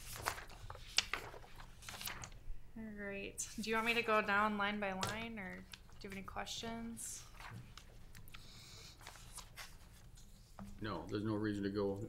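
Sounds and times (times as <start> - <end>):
papers rustling and clicking: 0.0 - 2.4, 3.8 - 6.4, 7.2 - 10.8.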